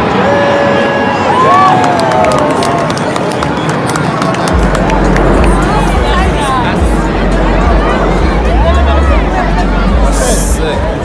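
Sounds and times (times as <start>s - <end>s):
crowd shouting and cheering: 0.0s - 11.0s
sharp claps or clicks: 1.8s - 5.7s
deep low rumble: 4.5s - 11.0s.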